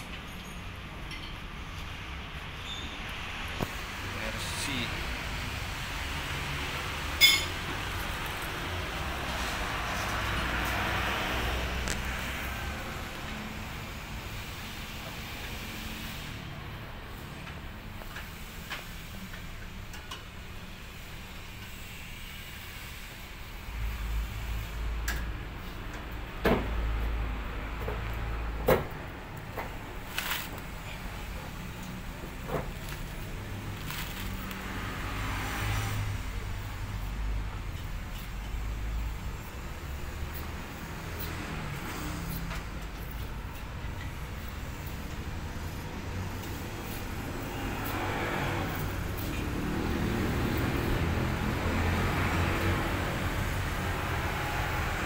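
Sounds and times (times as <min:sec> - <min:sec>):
vehicle engine rumble: 0:23.2 - 0:55.0.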